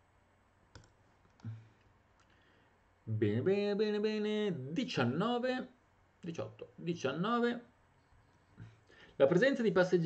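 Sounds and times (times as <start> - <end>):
computer mouse clicking: 0.7 - 1.5.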